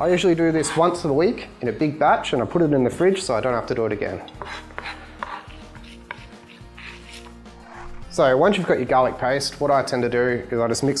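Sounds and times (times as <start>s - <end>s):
quiet background music: 0.0s - 11.0s
knife scraping on chopping board: 0.5s - 1.0s, 4.3s - 8.0s.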